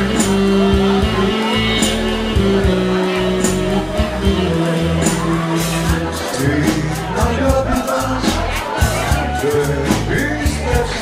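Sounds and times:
band playing instrumental: 0:00.0 - 0:11.0.

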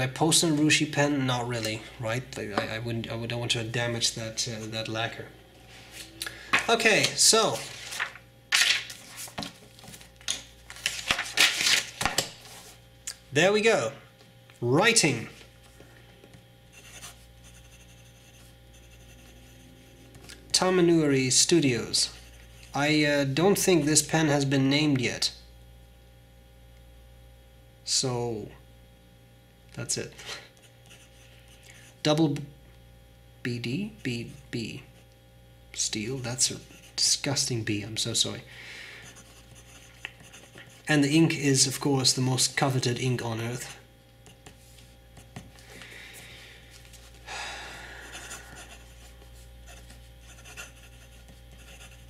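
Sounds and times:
pen nib scratching on paper: 0:16.8 - 0:20.0, 0:39.0 - 0:40.9, 0:48.2 - 0:52.0.

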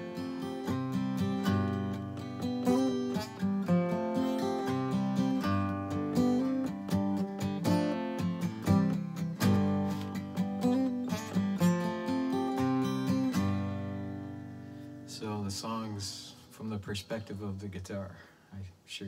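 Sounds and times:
acoustic guitar chords: 0:00.0 - 0:17.5.

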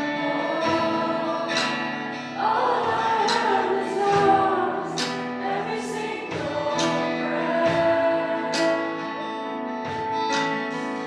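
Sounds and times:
women singing together: 0:00.0 - 0:09.5
acoustic guitar strumming: 0:00.0 - 0:11.0.

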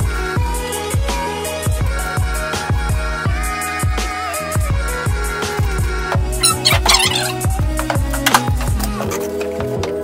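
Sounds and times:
background music with drum beat: 0:00.0 - 0:10.0.

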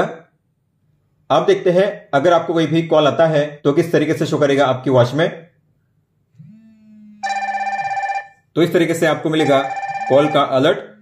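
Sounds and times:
phone vibration buzz: 0:06.4 - 0:08.4, 0:09.4 - 0:10.5
warbling electronic ringtone: 0:07.2 - 0:08.4, 0:09.4 - 0:10.9.

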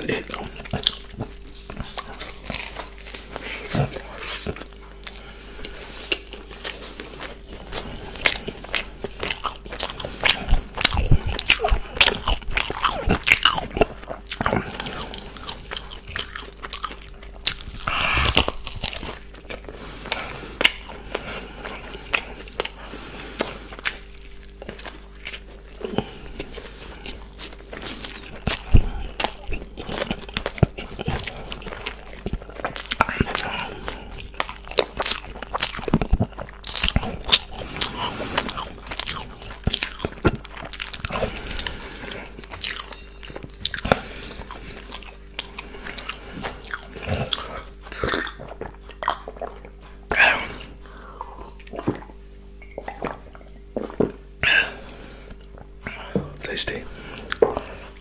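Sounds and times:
crunchy chewing: 0:00.0 - 0:58.0
wet mouth sounds: 0:00.0 - 0:58.0.

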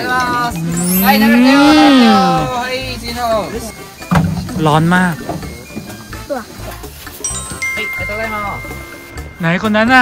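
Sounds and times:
long rising and falling vocal call: 0:00.4 - 0:02.6.

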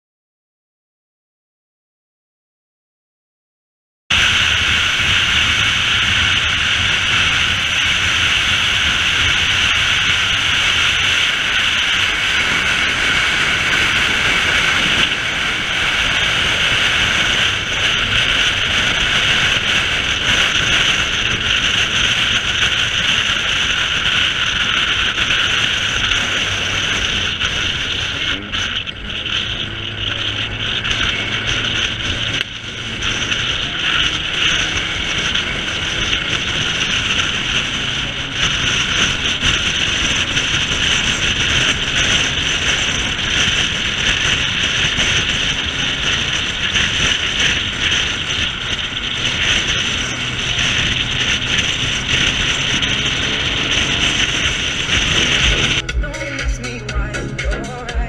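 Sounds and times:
low engine drone: 0:04.1 - 0:58.0
road noise: 0:04.1 - 0:58.0
wind rushing over microphone: 0:04.1 - 0:58.0.

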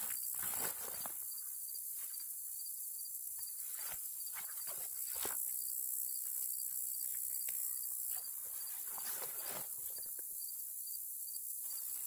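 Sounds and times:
crickets chirping: 0:00.0 - 0:12.0
high insect hiss: 0:00.0 - 0:12.0
backpack rustling: 0:08.2 - 0:10.2.

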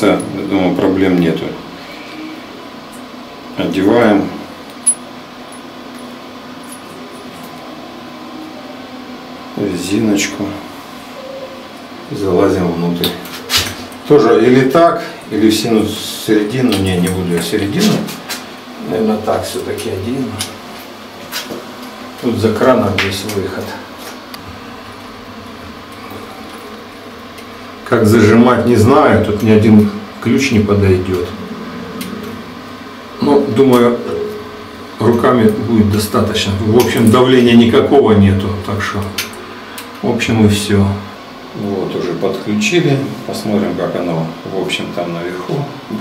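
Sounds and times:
room hum: 0:00.0 - 0:46.0.

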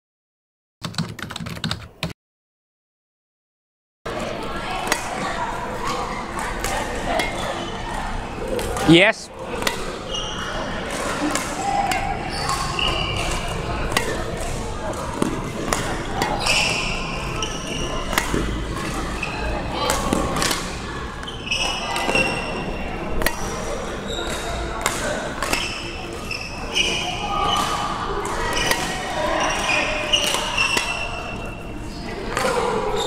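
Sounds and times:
court shoes squeaking: 0:04.1 - 0:33.0
racket striking shuttlecock: 0:04.8 - 0:05.2, 0:06.4 - 0:07.5, 0:09.4 - 0:10.0, 0:10.8 - 0:14.6, 0:15.2 - 0:19.1, 0:19.8 - 0:20.7, 0:22.0 - 0:22.5, 0:23.2 - 0:23.6, 0:24.3 - 0:25.8, 0:27.5 - 0:31.5.

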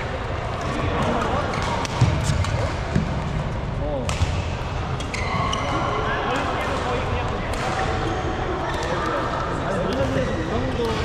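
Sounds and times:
reverberant din of play and voices: 0:00.0 - 0:11.0.

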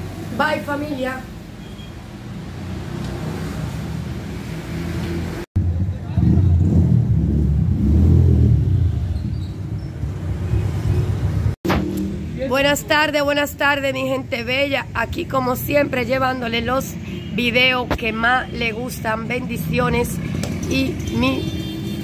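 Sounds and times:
voices: 0:12.4 - 0:21.7.

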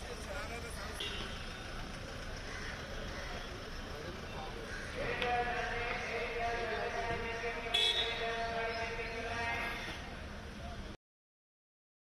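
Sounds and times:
people's voices: 0:00.0 - 0:11.0.

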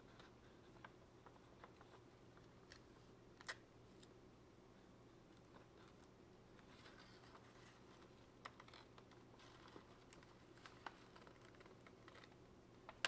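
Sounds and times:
low steady hum: 0:00.0 - 0:13.0
stiff paper clicks and rustles: 0:06.6 - 0:13.0.

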